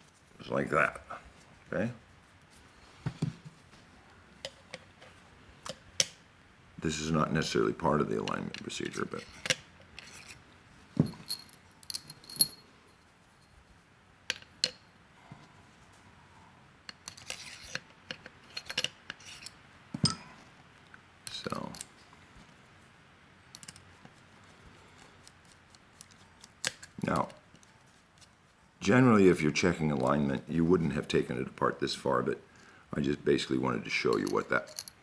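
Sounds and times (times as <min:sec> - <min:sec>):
metal grinder parts clinking: 0:08.2 - 0:10.4, 0:16.9 - 0:20.2, 0:34.0 - 0:35.0.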